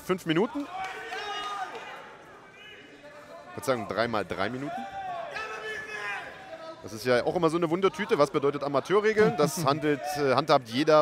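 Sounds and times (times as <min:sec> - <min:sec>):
faint shouting voices: 0:04.5 - 0:06.9.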